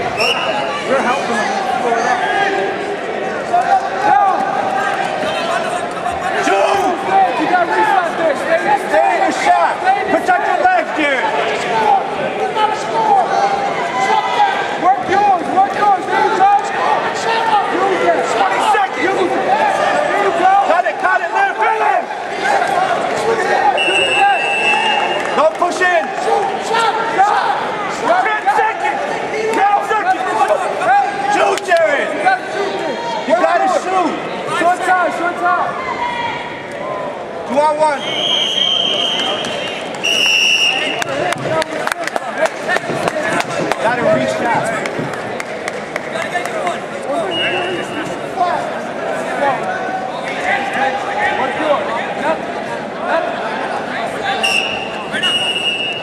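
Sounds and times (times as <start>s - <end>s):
crowd shouting and talking: 0.0s - 56.0s
short high whistle: 0.2s - 0.6s, 38.0s - 41.0s, 54.4s - 56.0s.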